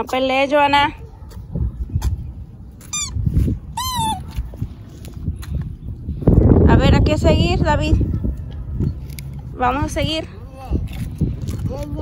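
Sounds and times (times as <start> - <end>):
toddler squealing: 3.8 - 4.2.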